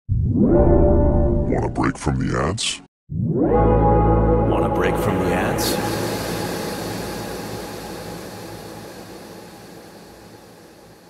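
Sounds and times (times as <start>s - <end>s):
reverb wash: 3.5s - 11.0s
heavily echoed voice: 4.5s - 7.4s.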